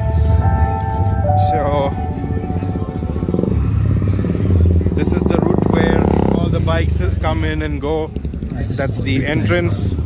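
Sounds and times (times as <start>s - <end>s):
motorcycle engine rumbling: 0.0s - 10.0s.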